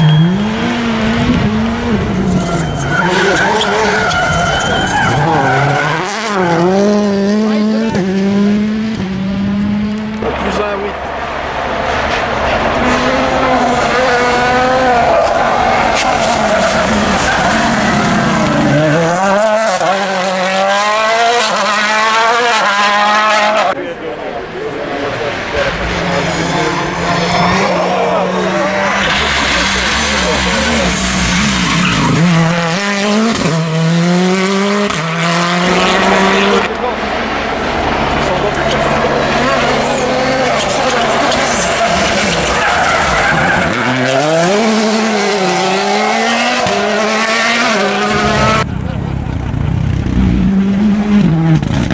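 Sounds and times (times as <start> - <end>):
tyres skidding on tarmac: 0.0 - 8.6, 9.8 - 51.9
rally cars passing flat out: 0.0 - 51.9.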